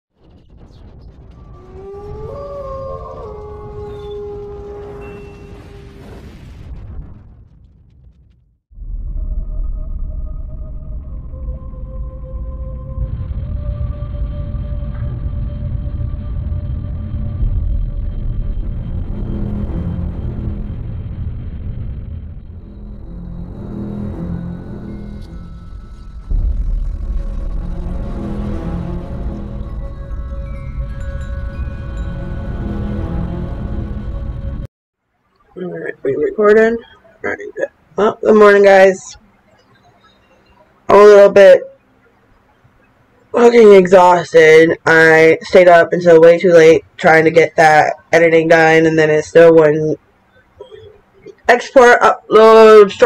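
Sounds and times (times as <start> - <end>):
low rumble: 0.1 - 34.7
dark intro music: 0.2 - 34.7
long howl-like tones: 1.4 - 6.2, 9.2 - 21.1.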